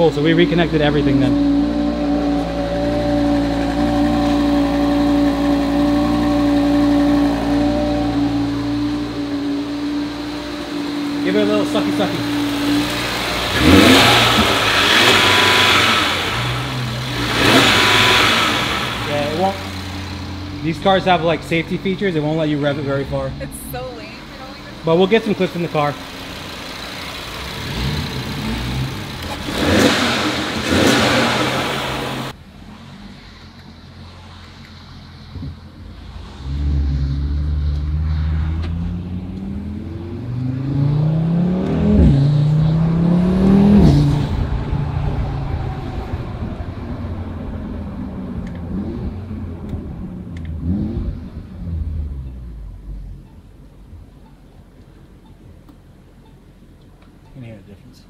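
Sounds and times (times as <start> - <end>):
loud engine and intake burst: 0.0 - 52.2
car engine accelerating with upshifts: 0.0 - 57.9.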